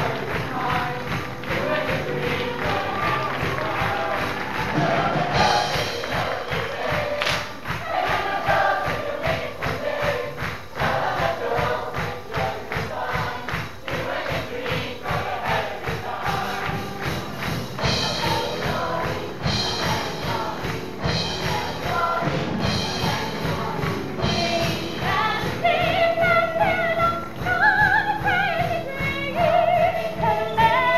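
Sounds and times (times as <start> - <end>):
chorus singing: 0.0 - 30.9
upbeat backing music: 0.0 - 30.9.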